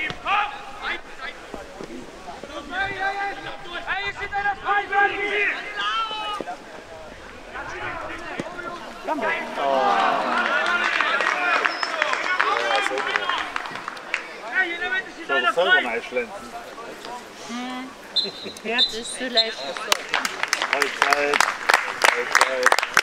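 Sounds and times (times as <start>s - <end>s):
people shouting and calling: 2.4s - 16.0s.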